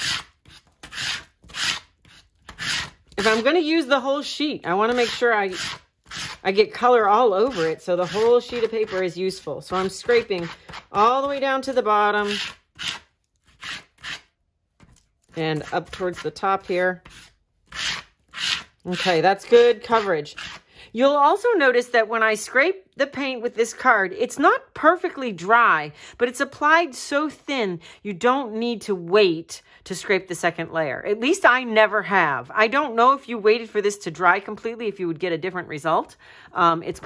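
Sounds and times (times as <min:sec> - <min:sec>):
plastic card scraping paint on paper: 0:00.0 - 0:03.5, 0:07.4 - 0:20.7.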